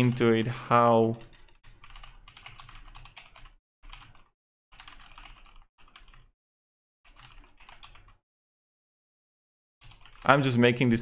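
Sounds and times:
typing on computer keyboard: 0:00.0 - 0:06.3, 0:07.0 - 0:08.2, 0:09.8 - 0:10.4.

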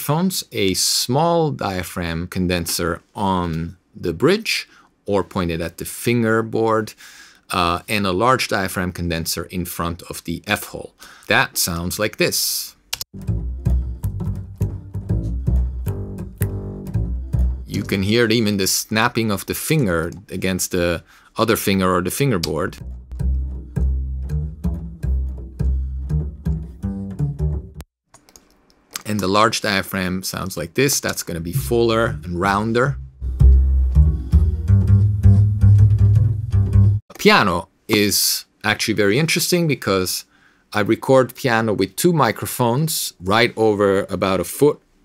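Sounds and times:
upright bass plucked notes: 0:13.1 - 0:18.4, 0:22.4 - 0:27.8, 0:31.3 - 0:37.0
fingers snapping on fingerboard: 0:15.9 - 0:16.6.

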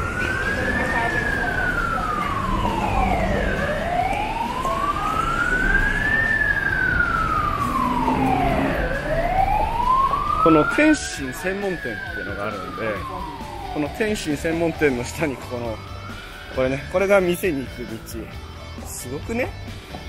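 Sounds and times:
siren wailing: 0:00.0 - 0:18.1
street traffic: 0:00.0 - 0:20.0.

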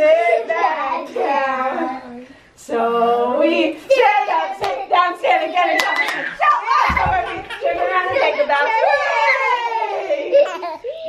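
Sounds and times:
woman and children chanting: 0:00.0 - 0:09.7
hand claps: 0:05.8 - 0:06.3.

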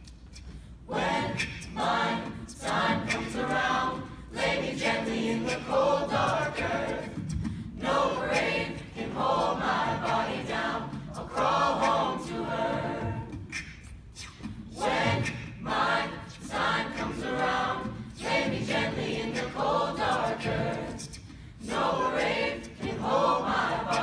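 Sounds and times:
beatboxed percussion clicks: 0:00.0 - 0:24.0
choir singing a cappella: 0:00.8 - 0:24.0.

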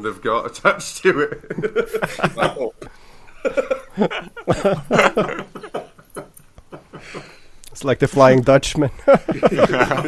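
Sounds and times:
men laughing: 0:01.0 - 0:07.4, 0:08.9 - 0:10.0.

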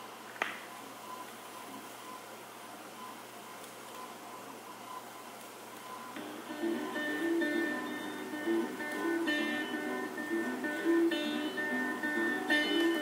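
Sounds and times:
vinyl surface hiss with ticks: 0:00.0 - 0:13.0
strummed acoustic guitar music: 0:06.2 - 0:13.0.

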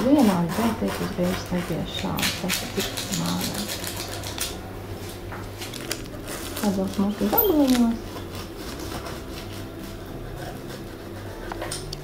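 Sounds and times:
pizza cutter scraping through crust: 0:00.0 - 0:04.5, 0:07.9 - 0:12.0.

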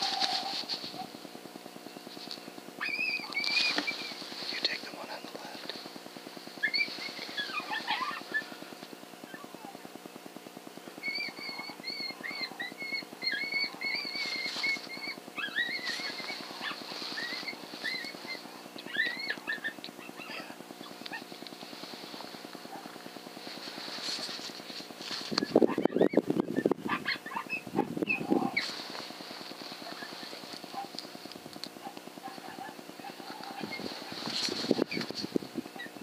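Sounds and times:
harsh rough animal sound: 0:00.0 - 0:01.1, 0:06.6 - 0:08.6, 0:11.0 - 0:31.2
coyote howling: 0:02.8 - 0:04.2, 0:06.6 - 0:08.6, 0:09.2 - 0:09.9, 0:10.9 - 0:21.3, 0:25.4 - 0:29.0, 0:29.6 - 0:31.0, 0:31.8 - 0:36.0
coyote yipping: 0:02.8 - 0:04.2, 0:06.6 - 0:08.6, 0:09.2 - 0:09.8, 0:11.0 - 0:21.3, 0:22.6 - 0:23.0, 0:25.2 - 0:29.0, 0:29.6 - 0:31.0, 0:31.6 - 0:36.0.

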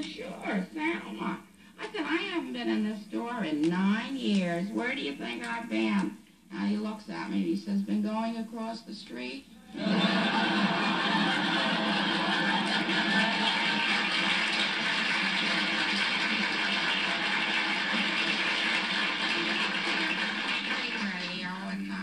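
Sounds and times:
audience laughter: 0:09.7 - 0:20.7
audience applause: 0:09.8 - 0:21.8.

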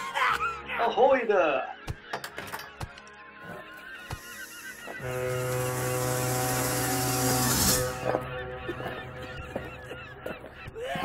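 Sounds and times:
airy hiss: 0:04.3 - 0:08.0
foghorn blast: 0:05.0 - 0:08.6.

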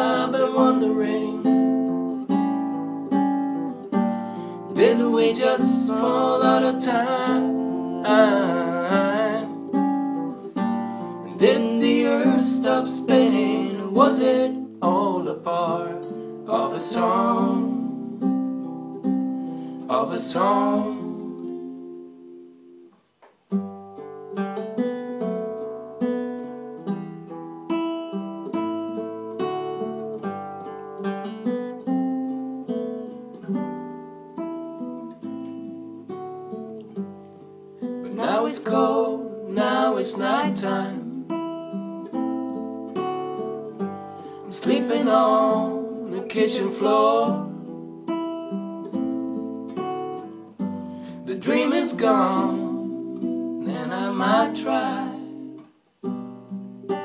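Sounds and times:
acoustic guitar picking: 0:00.0 - 0:57.0.

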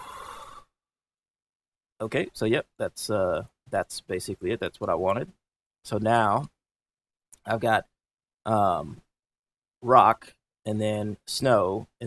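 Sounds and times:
breathy exhale: 0:00.0 - 0:00.8.

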